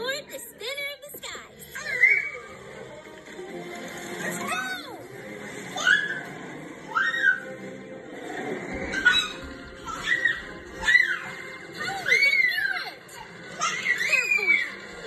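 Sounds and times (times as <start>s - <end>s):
cartoon background music: 0.0s - 15.0s.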